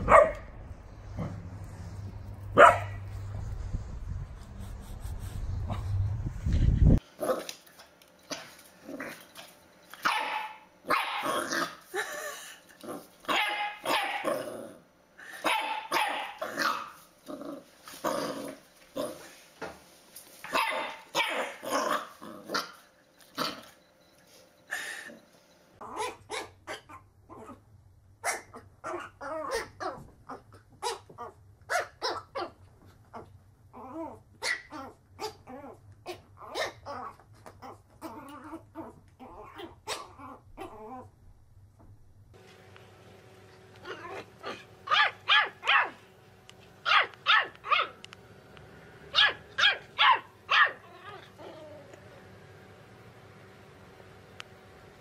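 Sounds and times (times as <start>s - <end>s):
puppy barking: 0.0s - 0.5s, 2.6s - 3.1s, 10.0s - 11.8s, 13.3s - 14.4s, 15.4s - 17.0s, 20.5s - 22.8s, 25.8s - 27.0s, 28.2s - 30.0s, 30.8s - 32.6s, 34.4s - 35.5s, 36.1s - 37.0s, 39.4s - 40.8s, 43.8s - 46.0s, 46.8s - 48.0s, 49.1s - 51.3s
puppy yapping: 10.0s - 11.8s, 13.3s - 14.4s, 15.4s - 17.0s, 20.5s - 22.8s, 28.2s - 32.6s, 33.8s - 41.0s, 43.8s - 46.0s, 46.8s - 48.0s, 49.1s - 51.8s.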